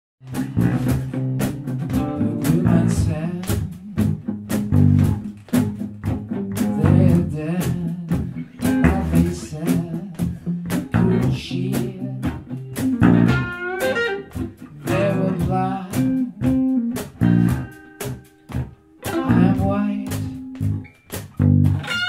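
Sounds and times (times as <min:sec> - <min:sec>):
rock band with guitar and bass: 0:00.2 - 0:22.0.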